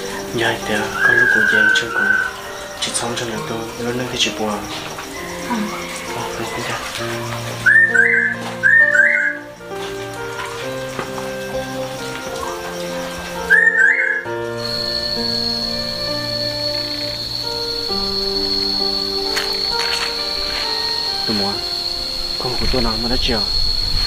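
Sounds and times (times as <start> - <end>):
soft background score: 0.0 - 24.0.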